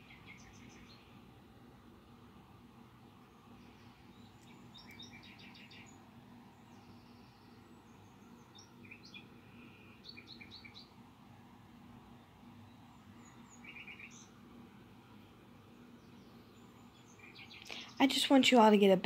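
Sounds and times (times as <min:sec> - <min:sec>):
faint bird chirping: 0:00.0 - 0:18.9
low steady hum: 0:00.0 - 0:19.0.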